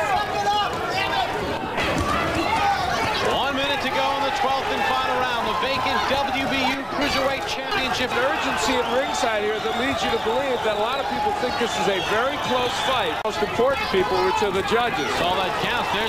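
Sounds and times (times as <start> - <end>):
faint crowd murmur: 0.0 - 16.0
men commentating: 0.0 - 16.0.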